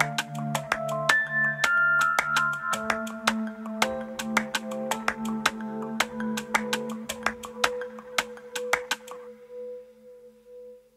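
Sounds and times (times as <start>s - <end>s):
sharp percussive clicks: 2.0s - 9.2s.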